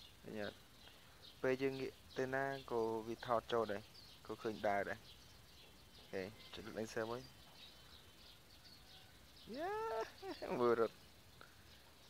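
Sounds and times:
faint high chirping: 0:00.0 - 0:12.0.

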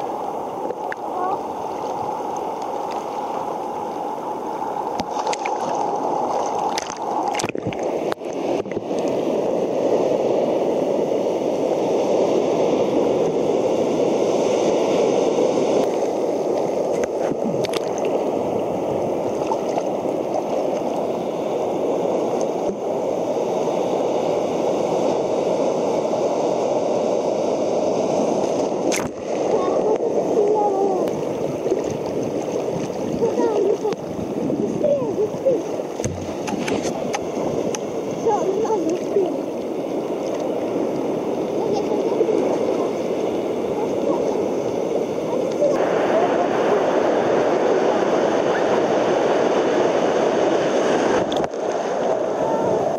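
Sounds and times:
surf sloshing and gurgling: 0:00.0 - 0:52.9.

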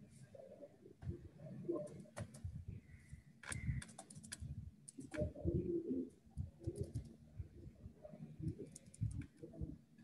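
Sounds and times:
faint clicks: 0:08.5 - 0:09.4.

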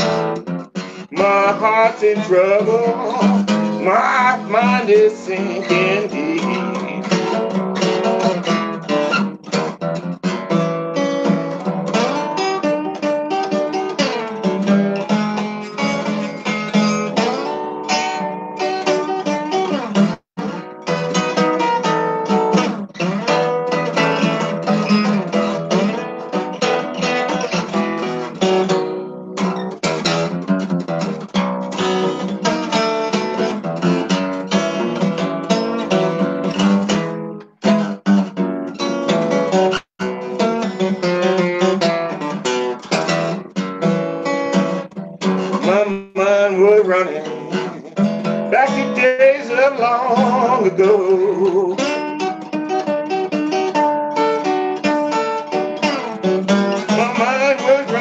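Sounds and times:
acoustic guitar blues: 0:00.0 - 0:58.0.

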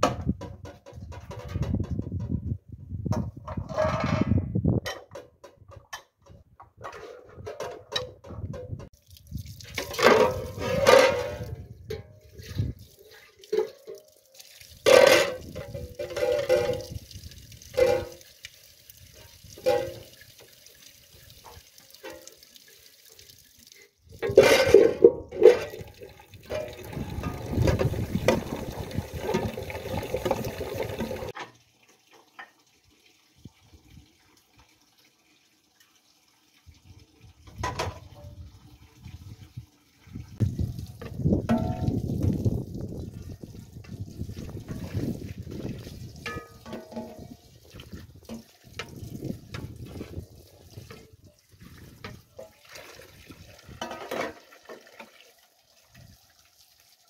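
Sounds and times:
tap water running into metal pot: 0:08.0 - 0:57.0
water splashing: 0:08.9 - 0:11.6, 0:12.2 - 0:31.4.

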